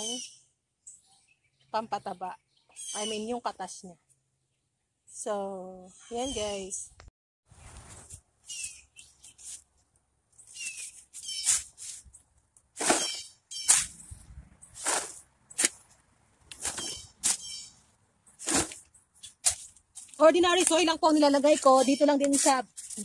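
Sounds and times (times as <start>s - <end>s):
metal scoop scraping soil: 10.5s - 12.1s, 12.8s - 15.9s, 16.5s - 17.7s, 18.3s - 23.0s.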